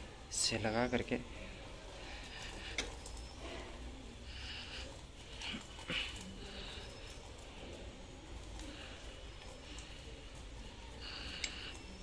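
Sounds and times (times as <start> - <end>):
faint high-pitched noises: 0.0 - 12.0.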